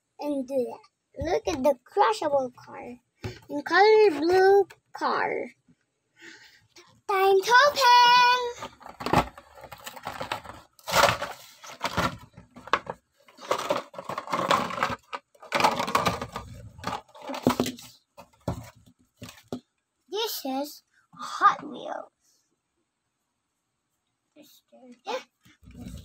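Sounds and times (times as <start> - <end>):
plastic packaging crinkling and tearing: 8.5 - 17.9.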